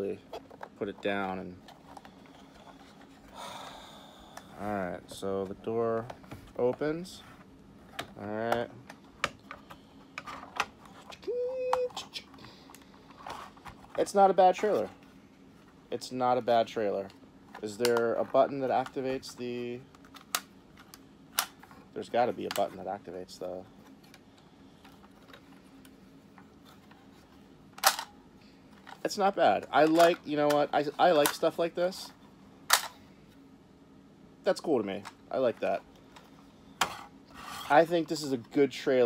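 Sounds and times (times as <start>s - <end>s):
man humming: 11.2s - 12.4s.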